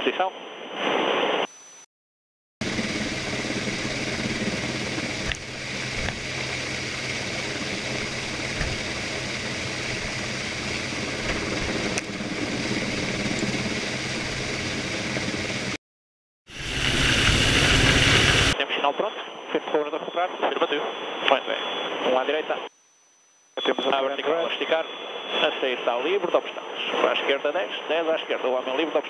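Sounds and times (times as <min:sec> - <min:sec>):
helicopter turbine and rotor: 0:02.6 - 0:15.8, 0:16.5 - 0:18.6.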